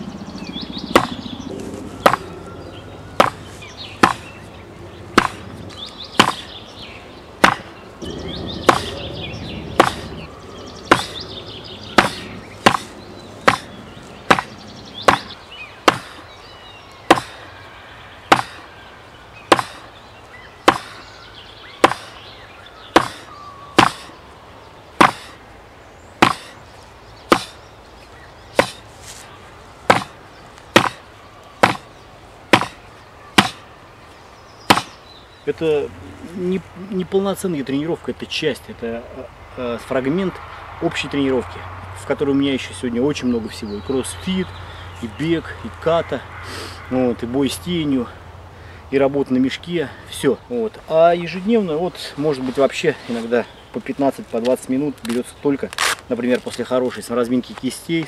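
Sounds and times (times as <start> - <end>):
fist knocking on wooden board: 4.0 - 4.2, 9.8 - 10.1, 13.5 - 13.7, 29.9 - 30.1, 30.8 - 31.0, 31.6 - 31.8, 32.5 - 32.8, 34.7 - 34.9.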